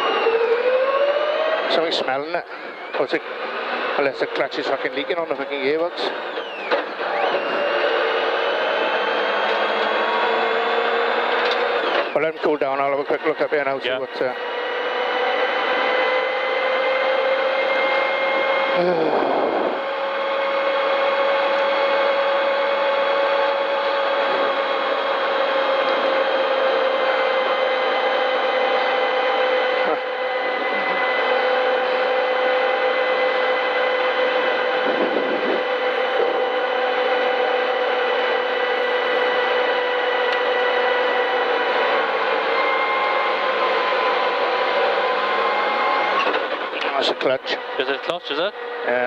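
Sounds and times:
car engine drone with whine: 0.0s - 49.0s.

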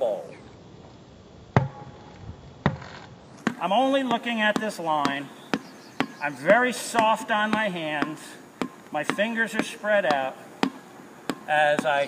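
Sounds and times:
ball bouncing on hard court: 1.6s - 1.9s, 3.4s - 12.0s.

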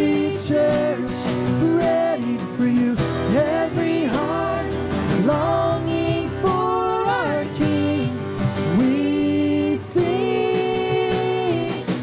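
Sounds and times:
acoustic and electric guitars: 0.0s - 12.0s
drums: 0.0s - 12.0s
person singing: 0.0s - 12.0s.

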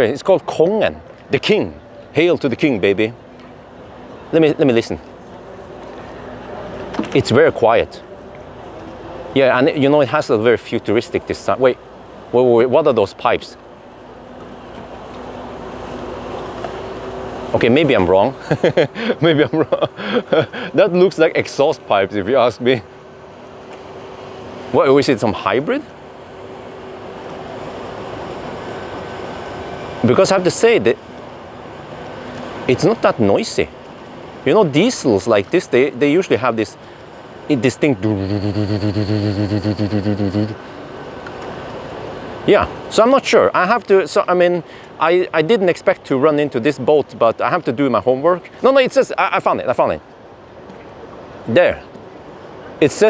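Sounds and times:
wind: 0.0s - 53.0s
man imitating engine drone: 18.4s - 20.9s, 37.5s - 40.8s
water noise: 37.6s - 40.8s
ferry low hum: 37.8s - 40.8s.

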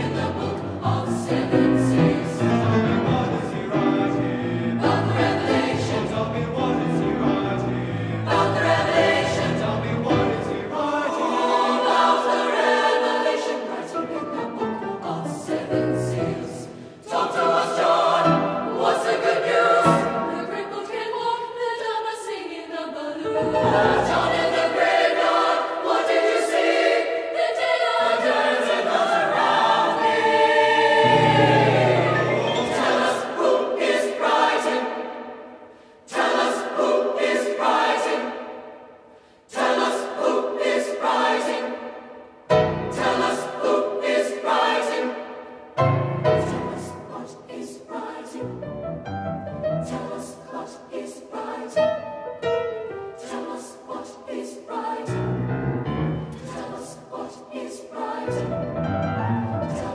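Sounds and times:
choir singing gospel song: 0.0s - 48.8s, 49.5s - 59.9s.

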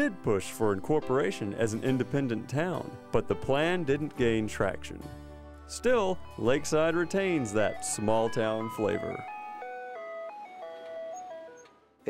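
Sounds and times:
ice cream truck chime tune: 5.6s - 11.9s.

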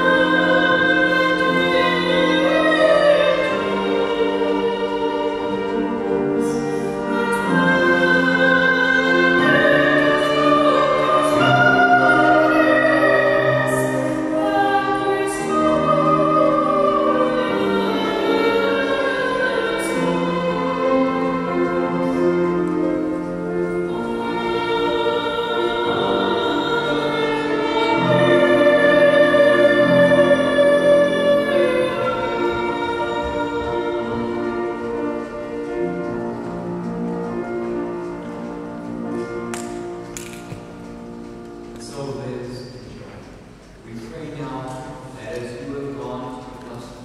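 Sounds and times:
sacred song with piano: 0.0s - 47.0s.

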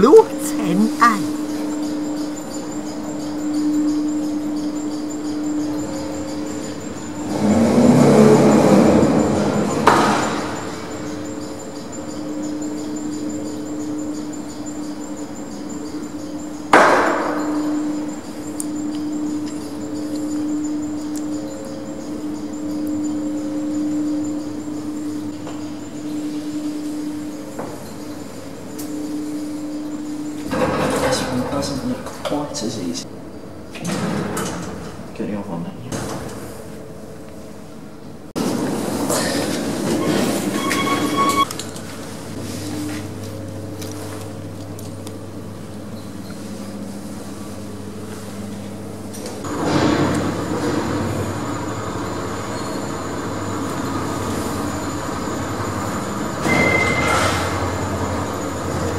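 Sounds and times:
lift car humming in shaft: 0.0s - 35.1s, 36.3s - 58.9s.

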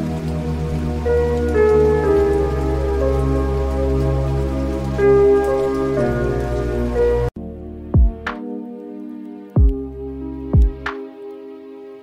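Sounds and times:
instrumental sustained chords: 0.0s - 12.0s.

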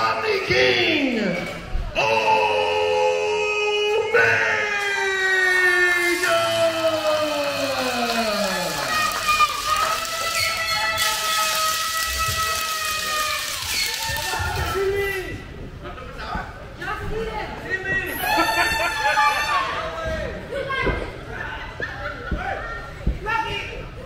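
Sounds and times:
crowd cheering and applauding: 6.0s - 14.8s.

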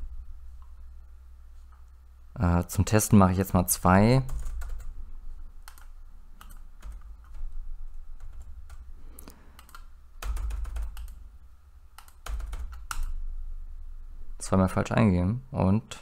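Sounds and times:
computer keyboard typing: 4.2s - 5.0s, 5.6s - 8.9s, 9.6s - 11.2s, 12.0s - 13.2s.

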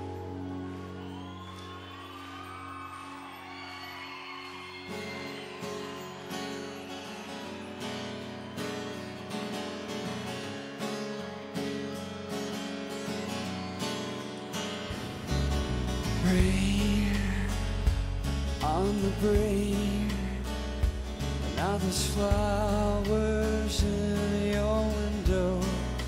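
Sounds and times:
strummed acoustic guitar: 4.7s - 26.0s.

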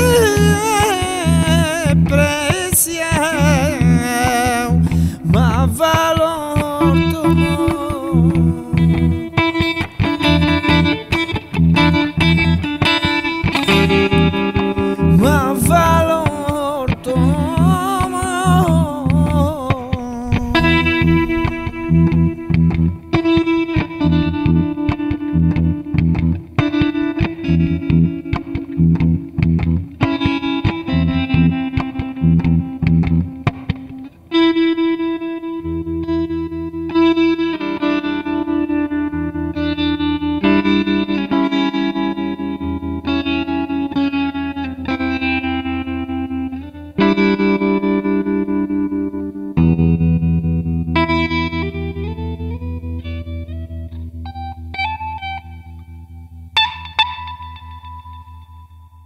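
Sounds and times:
guitar through effects: 0.0s - 59.0s.

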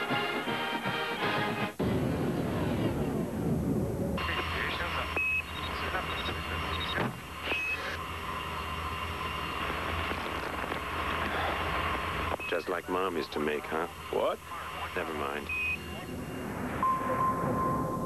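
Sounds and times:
music: 0.0s - 1.9s
rumbling noise: 1.8s - 5.2s, 15.2s - 18.0s
radio transmission hiss: 4.2s - 16.8s
low hum: 13.6s - 18.0s
short high beeps: 16.8s - 18.0s.

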